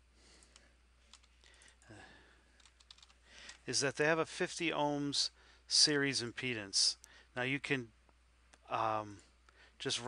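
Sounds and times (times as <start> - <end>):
computer keyboard typing: 1.1 - 1.4, 2.6 - 3.6.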